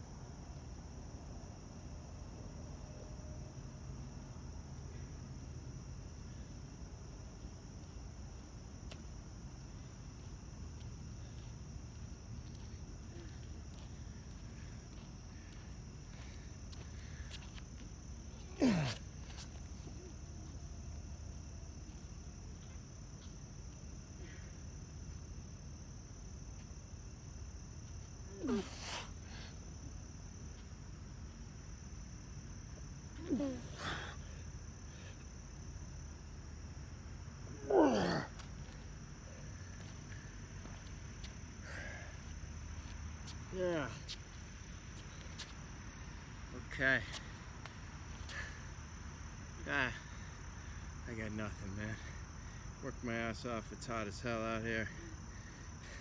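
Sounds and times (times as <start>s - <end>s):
crickets chirring: 0.0s - 56.0s
night insects chorus: 0.0s - 56.0s
man grunting yeah: 18.6s - 19.0s, 33.2s - 34.2s, 37.6s - 38.3s
man groaning exhale: 37.6s - 38.3s.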